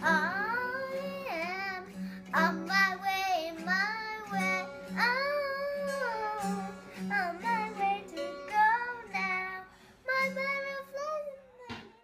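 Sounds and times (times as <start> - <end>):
acoustic guitar strumming: 0.0 - 11.8
girl singing: 0.0 - 12.0.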